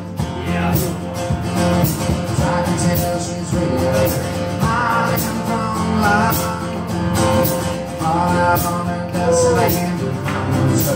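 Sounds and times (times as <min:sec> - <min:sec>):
acoustic guitar strumming: 0:00.0 - 0:10.9.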